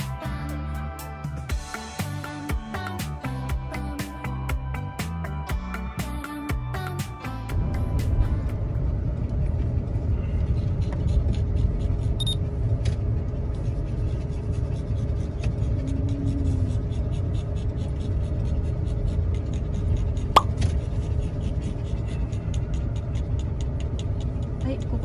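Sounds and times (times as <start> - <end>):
background music: 0.0 - 8.8
campervan driving rumble: 6.7 - 25.0.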